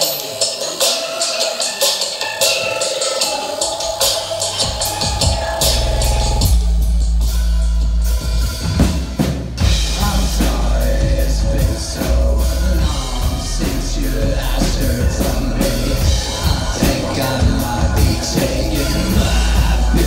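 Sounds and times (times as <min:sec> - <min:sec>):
deep sustained bass: 0:09.6 - 0:20.0.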